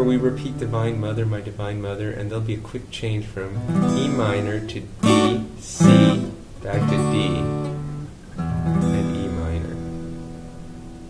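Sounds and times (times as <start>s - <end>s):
acoustic guitar chord strummed: 0.0s - 1.7s, 3.4s - 11.0s.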